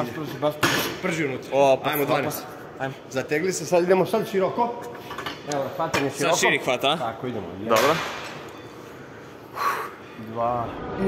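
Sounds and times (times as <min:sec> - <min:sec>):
gym room hiss: 0:08.8 - 0:11.0.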